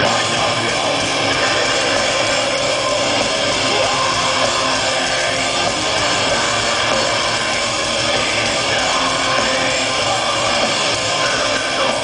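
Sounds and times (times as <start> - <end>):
distorted electric guitars: 0.0 - 12.0
drums: 0.0 - 12.0
singer's vocals: 0.0 - 12.0.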